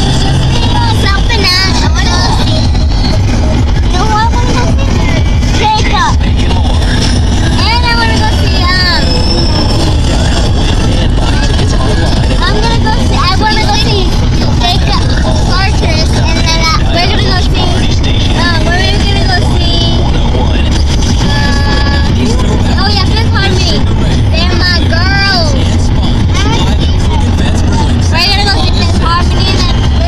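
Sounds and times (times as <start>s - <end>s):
children squealing and chattering: 0.0s - 20.0s
car cabin road rumble: 0.0s - 30.0s.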